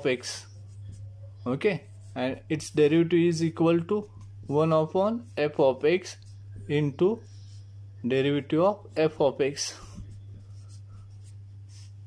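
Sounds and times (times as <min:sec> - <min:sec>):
steady low hum: 0:00.0 - 0:12.0
marker pen scratching: 0:00.3 - 0:02.4, 0:09.8 - 0:12.0.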